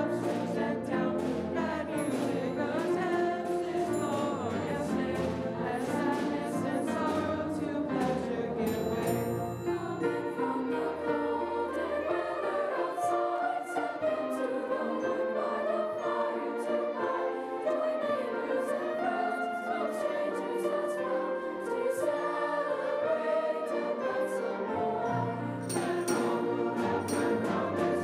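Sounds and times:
orchestra playing: 0:00.0 - 0:22.8, 0:23.8 - 0:28.0
choir singing: 0:00.0 - 0:28.0.

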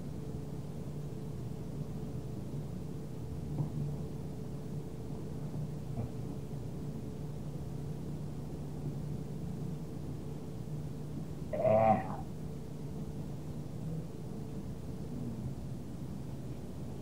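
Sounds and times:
recording hum and hiss: 0:00.0 - 0:17.0
person humming briefly: 0:11.5 - 0:12.3.

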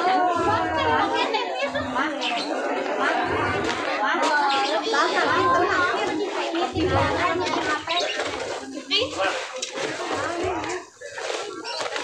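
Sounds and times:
background voices talking: 0:00.0 - 0:12.0.

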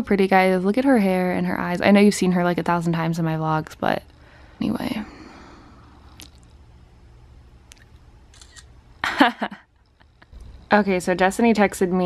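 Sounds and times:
steady low hum: 0:00.0 - 0:12.0
camera handling clicks: 0:08.3 - 0:08.7.

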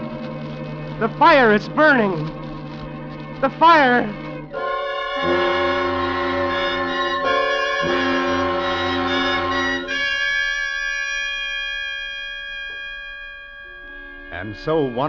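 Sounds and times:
orchestral music with brass chords: 0:03.0 - 0:10.1.

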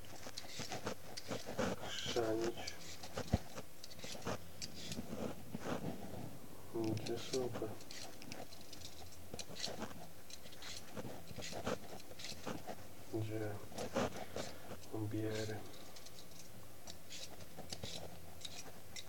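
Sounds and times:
vegetable peeler scraping potato skin: 0:00.0 - 0:05.8, 0:06.9 - 0:12.9, 0:13.7 - 0:19.0.

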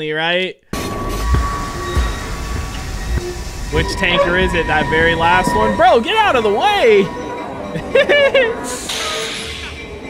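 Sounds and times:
train wheels rumbling on rail: 0:00.8 - 0:10.0
faint high ring: 0:00.9 - 0:06.0.

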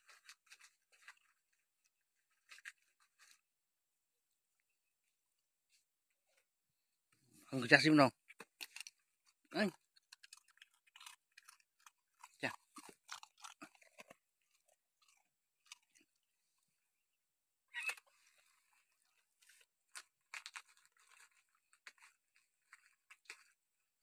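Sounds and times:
dogs crunching food: 0:00.0 - 0:03.5, 0:08.1 - 0:16.8, 0:17.8 - 0:24.0.

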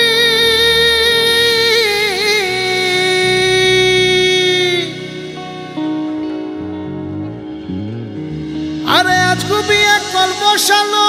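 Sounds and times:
folk-fusion band backing: 0:00.0 - 0:11.0
man singing long note: 0:08.4 - 0:11.0.

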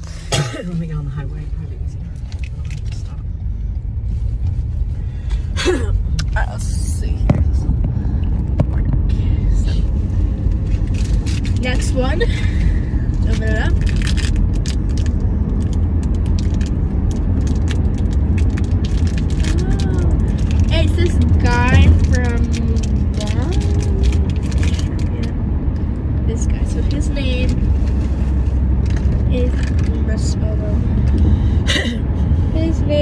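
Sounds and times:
car cabin road noise: 0:00.0 - 0:33.0
toy packaging crackling: 0:13.6 - 0:25.3.

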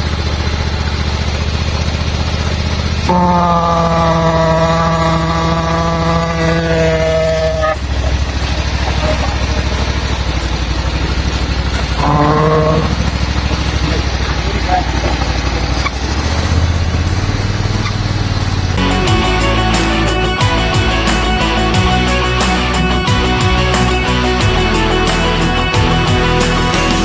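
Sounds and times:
petrol engine running under load: 0:00.0 - 0:27.0
steady whining tone: 0:00.0 - 0:27.0.

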